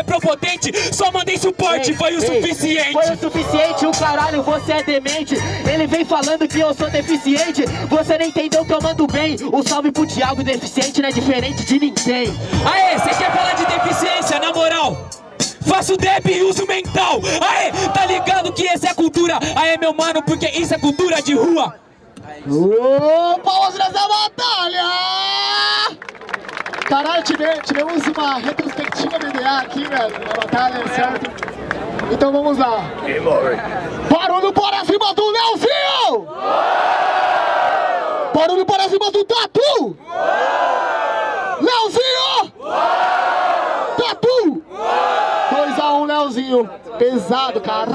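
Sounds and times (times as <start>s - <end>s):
crowd noise: 0.0s - 47.9s
crowd shouting and cheering: 2.2s - 4.6s, 12.5s - 19.2s, 33.8s - 39.0s, 39.9s - 47.9s
person shouting: 12.6s - 15.0s, 17.2s - 18.6s.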